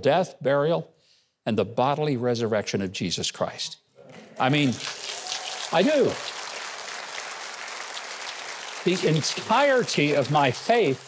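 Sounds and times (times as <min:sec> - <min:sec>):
audience applauding: 0:04.4 - 0:11.0.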